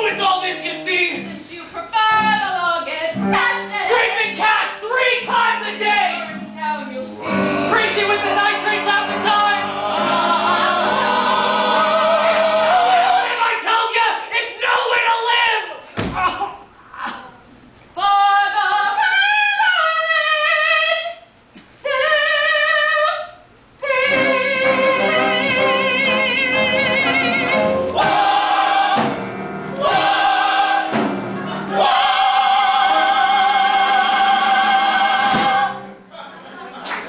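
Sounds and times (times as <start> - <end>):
singing voices: 0.0 - 15.3, 16.1 - 36.3.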